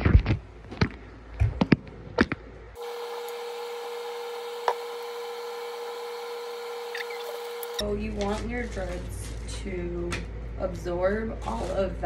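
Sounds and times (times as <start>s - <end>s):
machine hum with mid-pitched tone: 2.7s - 8.0s.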